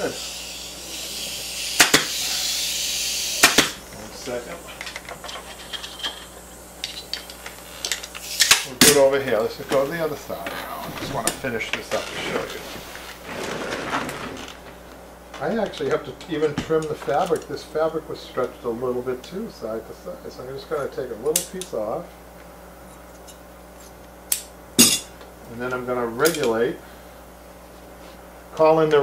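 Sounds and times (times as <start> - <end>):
pneumatic staple gun firing: 0.0 - 3.8, 8.2 - 9.0
compressed air hissing: 0.0 - 13.4
fabric rustling: 10.6 - 14.8.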